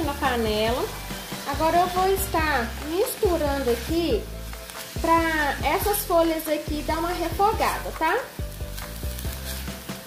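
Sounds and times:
spatula scraping pan: 0:00.0 - 0:08.0, 0:08.9 - 0:10.0
vegetables sizzling in oil: 0:00.0 - 0:10.0.

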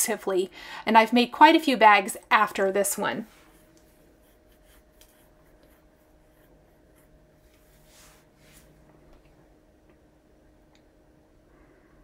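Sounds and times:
faint steady hum: 0:00.0 - 0:12.0
fabric rubbing and rustling: 0:07.4 - 0:08.8
soft fabric swishes: 0:07.5 - 0:08.9.

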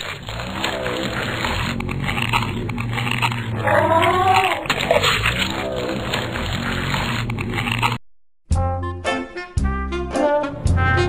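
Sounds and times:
dog-like animal call: 0:03.5 - 0:06.3.

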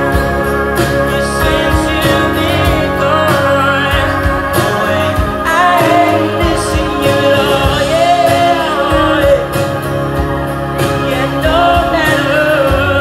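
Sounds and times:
acoustic and electric guitars: 0:00.0 - 0:13.0.

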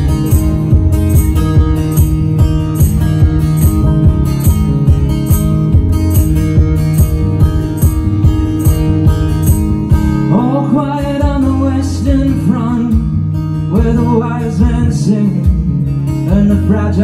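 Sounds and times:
acoustic guitar strumming: 0:00.0 - 0:17.0
man singing: 0:10.2 - 0:17.0.

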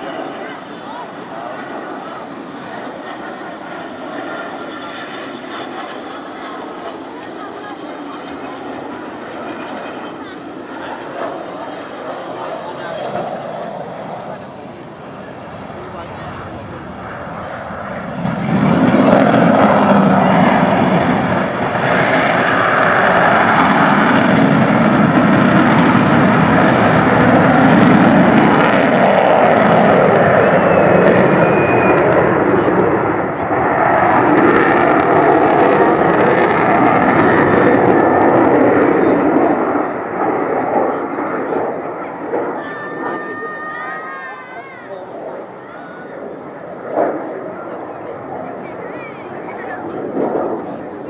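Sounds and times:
loud jet engine noise: 0:00.0 - 0:51.0.

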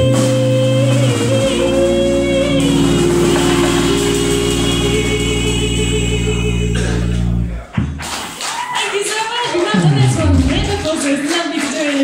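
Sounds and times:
woman singing with vibrato: 0:00.0 - 0:07.4
keyboard and drums chord: 0:00.0 - 0:08.0
audience noise: 0:00.0 - 0:12.0
band short sharp hit: 0:02.6 - 0:08.3.

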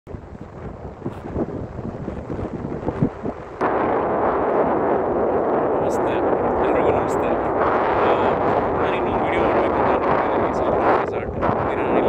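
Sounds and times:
wind buffeting microphone: 0:00.1 - 0:12.0
wind noise roar: 0:00.1 - 0:12.0.

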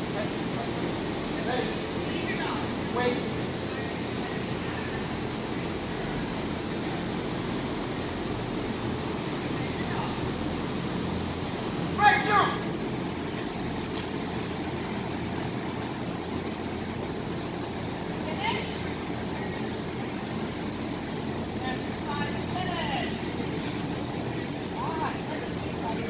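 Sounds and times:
distant voices: 0:00.0 - 0:26.0.

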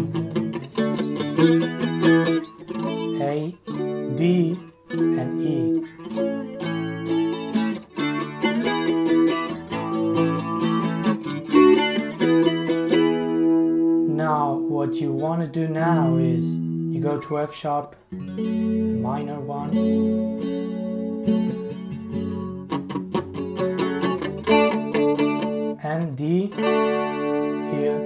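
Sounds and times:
electric guitar picking notes: 0:00.0 - 0:28.0.

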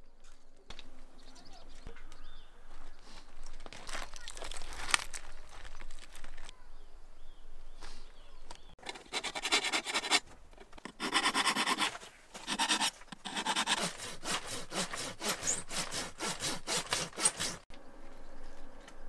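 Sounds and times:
hand saw cutting wood: 0:08.8 - 0:10.2, 0:10.8 - 0:17.7.

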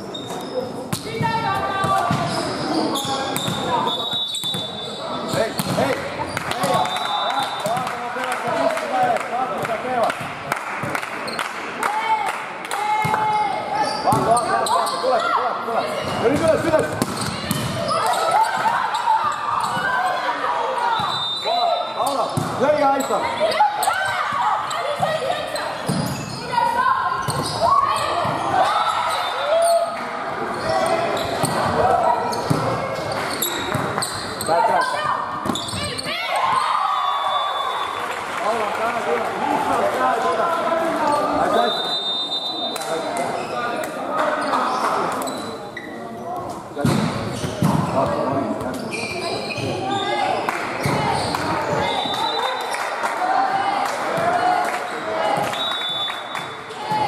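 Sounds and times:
voices of players and spectators: 0:00.0 - 0:57.0
volleyball hits echoing: 0:04.4 - 0:11.3, 0:16.0 - 0:20.1, 0:31.3 - 0:34.0, 0:46.8 - 0:48.7.

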